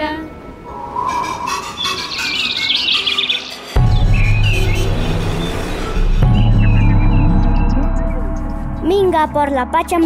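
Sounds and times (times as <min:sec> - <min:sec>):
music bed: 0:00.0 - 0:10.0
birds chirping: 0:00.6 - 0:09.4
deep steady low tone: 0:03.8 - 0:09.4.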